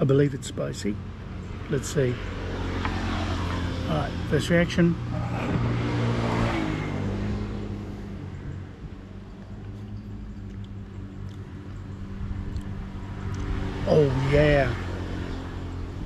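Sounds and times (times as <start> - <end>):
vehicle engine humming: 0.0 - 16.0
man humming: 5.1 - 5.8.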